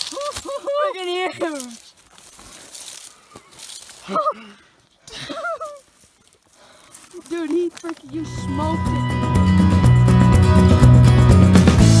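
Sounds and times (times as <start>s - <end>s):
dry grass and brush rustling: 0.0s - 9.2s.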